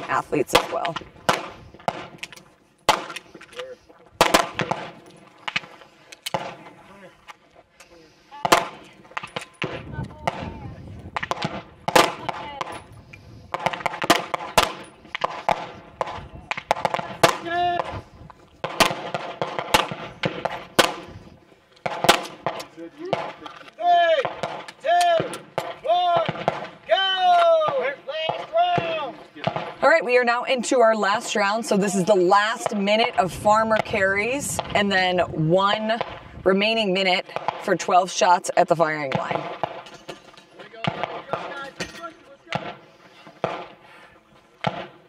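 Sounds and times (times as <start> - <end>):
gunshots: 0.0 - 3.4, 4.2 - 6.8, 8.4 - 30.3, 32.3 - 36.4, 37.2 - 38.0, 38.8 - 40.1, 40.7 - 43.9, 44.6 - 45.0.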